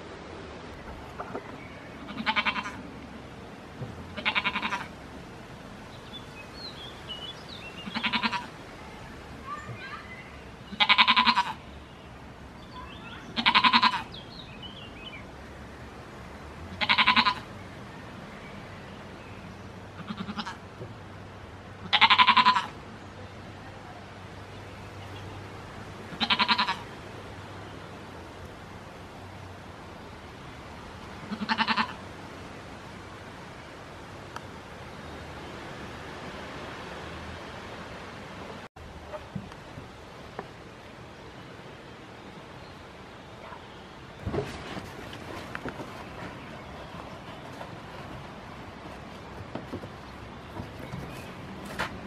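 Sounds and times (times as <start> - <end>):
goat bleating: 2.0 - 2.8, 4.2 - 4.9, 7.8 - 8.5, 10.7 - 11.6, 13.4 - 14.1, 16.8 - 17.4, 20.0 - 20.6, 21.8 - 22.8, 26.1 - 26.8, 31.3 - 32.0.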